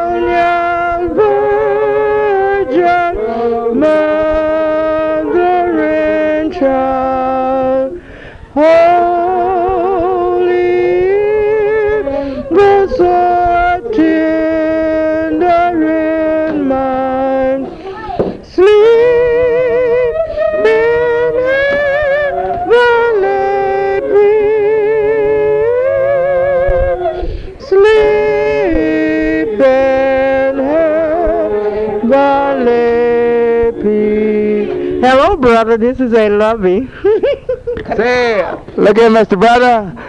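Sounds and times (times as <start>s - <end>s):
voices singing with vibrato: 0.0s - 37.7s.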